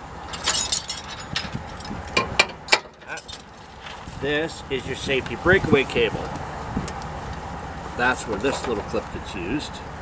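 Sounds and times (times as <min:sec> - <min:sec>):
metal chains clinking: 0:00.2 - 0:04.0.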